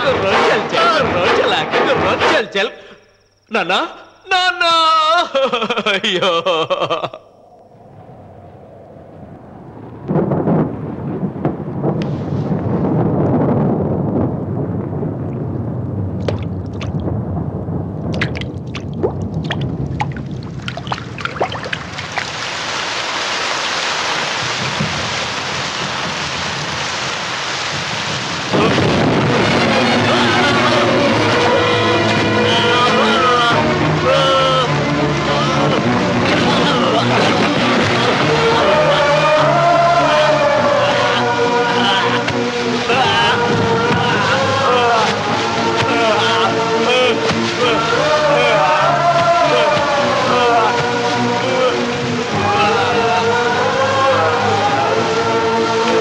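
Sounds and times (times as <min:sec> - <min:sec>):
thunder rumbling and cracking: 0:00.0 - 0:02.8, 0:05.1 - 0:23.2, 0:24.0 - 0:53.0
heavy rain pouring: 0:00.0 - 0:02.9, 0:03.6 - 0:56.0.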